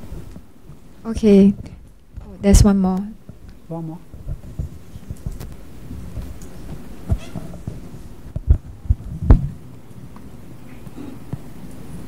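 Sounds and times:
microphone handling thumps: 0.0 - 9.7.

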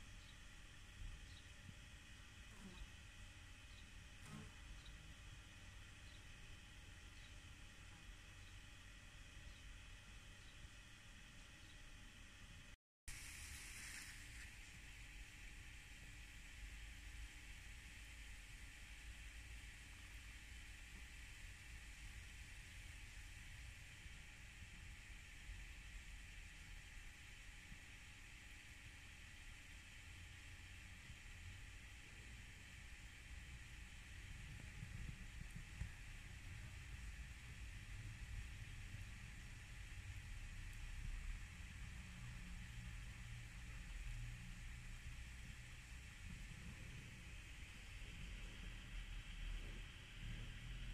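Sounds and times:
constant hiss: 0.0 - 50.9.

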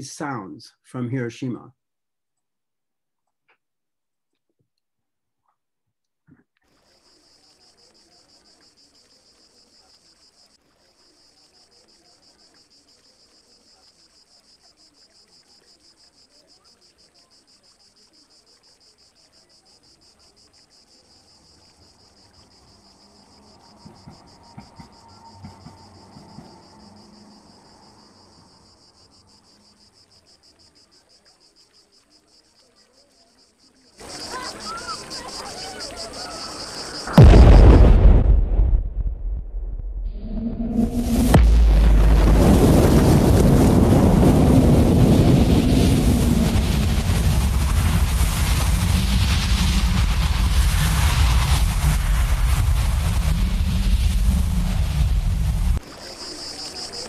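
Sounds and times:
insects chirring: 6.7 - 38.6, 40.2 - 57.0
sudden loud noise: 36.6 - 55.8
deep explosion blast: 37.1 - 55.8.

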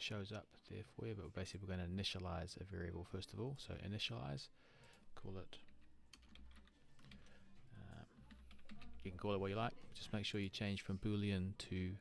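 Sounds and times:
keyboard typing: 4.8 - 10.1.

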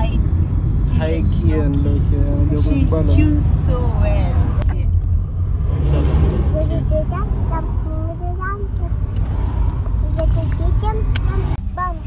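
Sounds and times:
car road rumble inside cabin: 0.0 - 12.0.

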